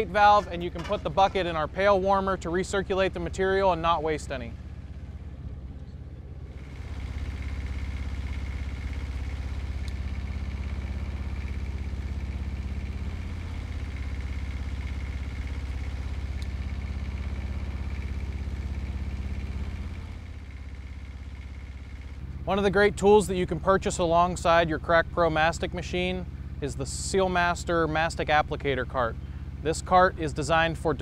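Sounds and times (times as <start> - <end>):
diesel engine running: 0.0 - 31.0.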